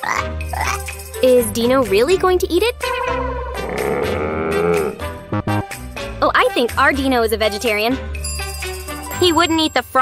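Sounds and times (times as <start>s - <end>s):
light background music: 0.0s - 10.0s
person growling: 3.5s - 5.2s.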